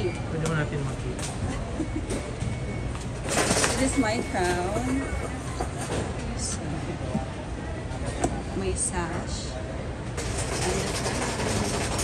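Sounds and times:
busy crowd hubbub: 0.0s - 12.0s.

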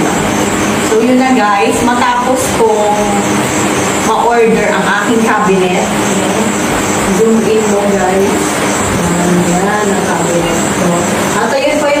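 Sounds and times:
person's voice: 4.1s - 12.0s.

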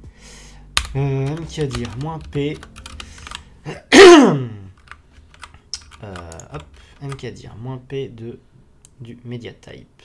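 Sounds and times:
mechanical keyboard typing: 0.8s - 3.4s, 4.7s - 7.4s
person coughing: 3.7s - 4.6s.

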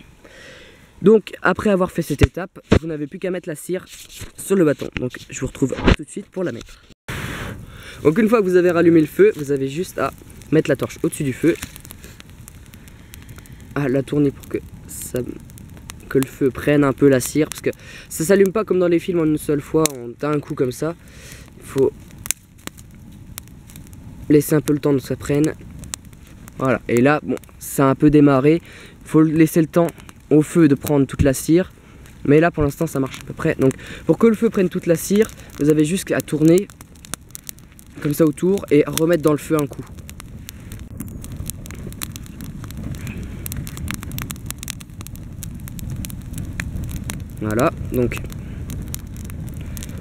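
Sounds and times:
campfire crackling: 0.0s - 50.0s
fire popping: 0.0s - 50.0s
low rumble of flame: 0.0s - 50.0s.

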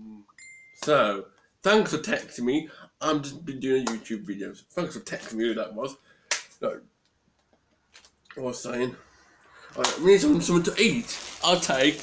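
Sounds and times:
man speaking: 0.0s - 6.0s, 6.6s - 6.8s, 8.4s - 9.0s, 9.7s - 12.0s
hand clap: 6.3s - 6.6s.

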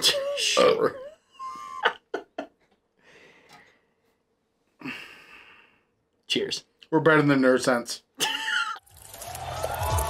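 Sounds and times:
man laughing: 0.0s - 2.6s, 8.2s - 8.8s.

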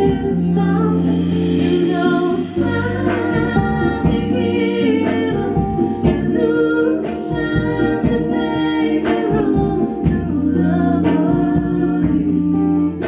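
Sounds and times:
acoustic guitar: 0.0s - 13.0s
backing vocals: 0.0s - 13.0s
bass: 0.0s - 13.0s
steady drum beat: 0.0s - 13.0s
woman singing lead vocal: 0.0s - 13.0s.

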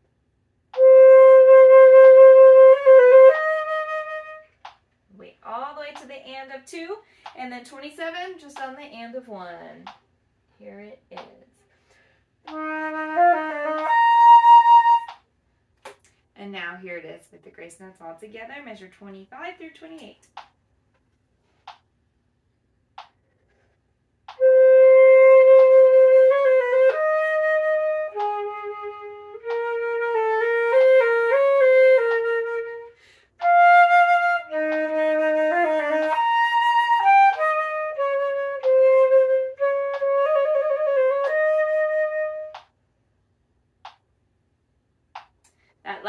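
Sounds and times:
flute playing slow passage: 0.8s - 4.4s, 12.5s - 15.1s, 24.4s - 42.6s.

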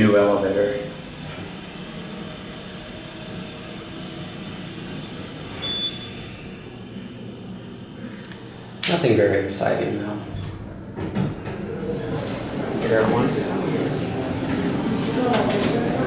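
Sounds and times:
elevator low hum: 0.0s - 16.0s.

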